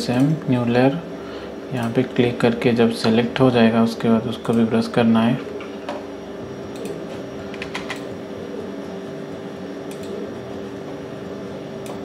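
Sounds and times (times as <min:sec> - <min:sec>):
steady low hum: 0:00.0 - 0:12.0
keyboard clicks: 0:09.9 - 0:10.2.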